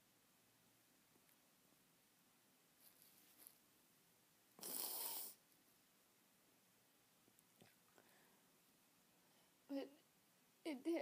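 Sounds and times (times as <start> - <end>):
woman sniffing: 4.6 - 5.4.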